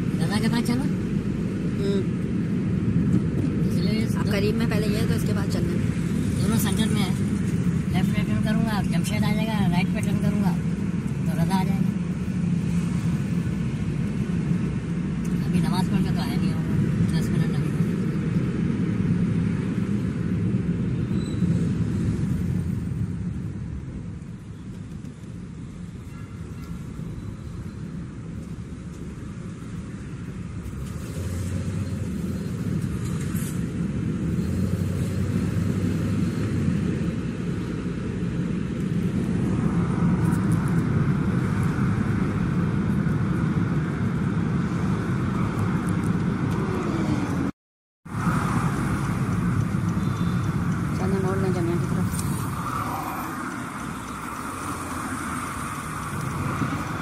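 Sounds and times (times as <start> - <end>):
car engine and tyres in traffic: 0.0 - 57.0.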